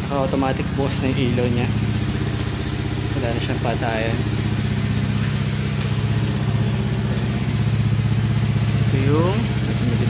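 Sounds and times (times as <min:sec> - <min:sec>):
scooter engine idling: 0:00.0 - 0:10.0.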